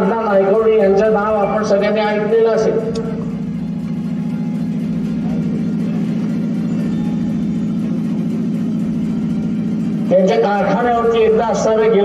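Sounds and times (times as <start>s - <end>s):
low hum with fast flutter: 0.0s - 12.0s.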